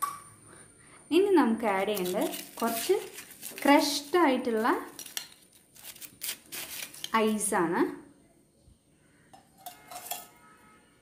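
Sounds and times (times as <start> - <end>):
spoon clinking ice and glass: 9.6 - 10.4.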